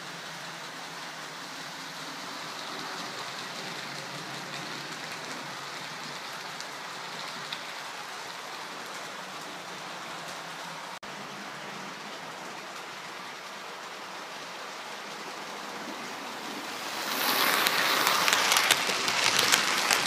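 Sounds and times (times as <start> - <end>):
model train rumbling past: 15.8 - 20.0.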